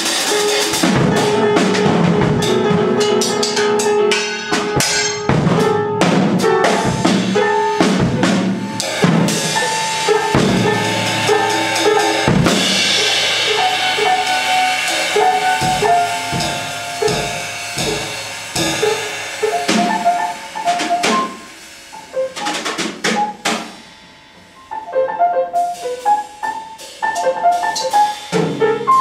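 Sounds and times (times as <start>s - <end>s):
cymbal wash: 0.0s - 25.1s
drum kit: 0.0s - 29.0s
piano notes: 0.0s - 29.0s.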